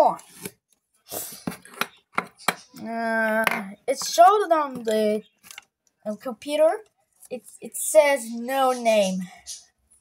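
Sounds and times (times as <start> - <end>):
plastic clicks and knocks: 1.5 - 2.8.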